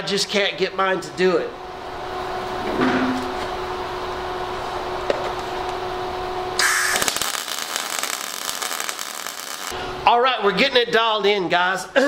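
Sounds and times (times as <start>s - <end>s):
steady low hum: 0.0s - 10.1s
welding arc crackling hiss: 6.6s - 9.8s.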